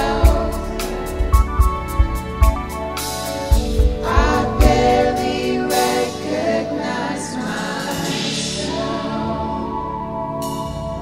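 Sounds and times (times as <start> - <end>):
vocal group singing held notes: 0.0 - 1.4, 3.8 - 11.0
band playing worship music: 0.0 - 11.0.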